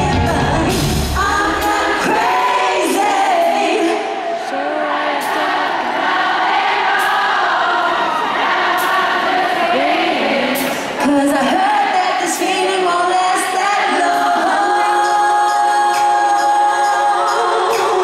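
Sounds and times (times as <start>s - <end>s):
bass and drums: 0.0s - 1.9s
crowd singing together: 0.0s - 18.0s.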